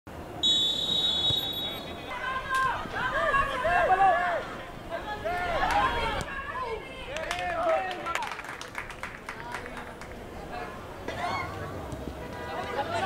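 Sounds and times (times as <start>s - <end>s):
referee's whistle blast: 0.4s - 2.0s.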